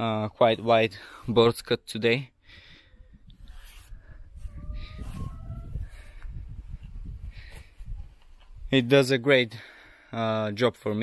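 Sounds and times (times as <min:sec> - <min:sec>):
wind rumble on microphone: 0:02.8 - 0:08.8.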